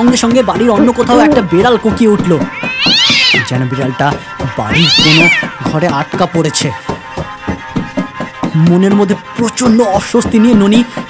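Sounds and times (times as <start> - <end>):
background music: 0.0 - 11.0
cat yowling: 2.5 - 3.5, 4.7 - 5.6.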